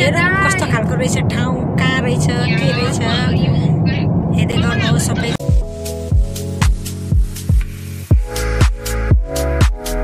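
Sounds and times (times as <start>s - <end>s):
car road and engine rumble: 0.0s - 8.1s.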